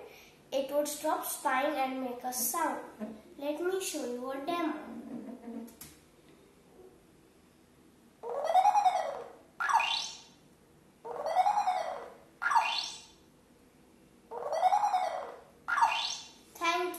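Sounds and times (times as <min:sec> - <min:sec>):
electronic tone rising and falling: 0:11.1 - 0:13.1.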